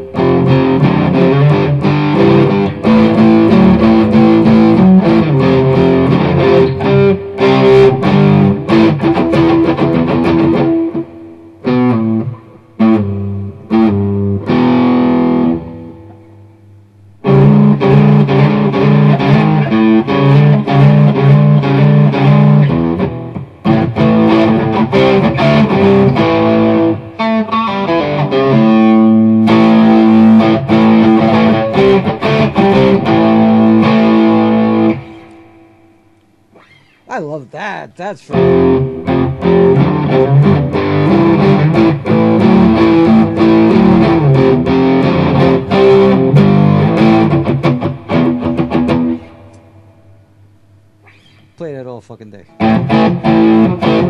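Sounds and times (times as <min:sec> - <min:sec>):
electric guitar riff: 0:00.0 - 0:37.4, 0:38.0 - 0:51.6, 0:52.4 - 0:54.0.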